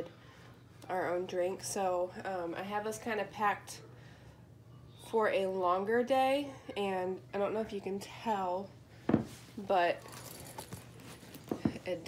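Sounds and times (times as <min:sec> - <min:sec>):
bag rustling on carpet: 0:09.2 - 0:12.0.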